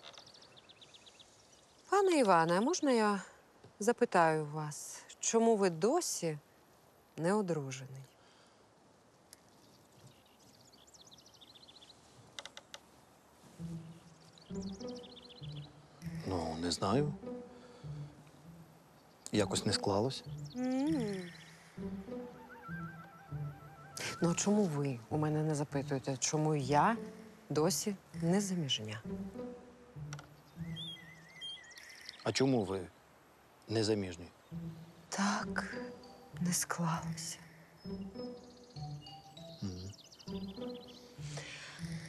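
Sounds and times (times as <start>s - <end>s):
birds chirping and warbling: 0.0s - 6.3s, 9.2s - 12.4s, 13.4s - 42.0s
music with low held tones: 13.4s - 32.8s, 33.7s - 42.0s.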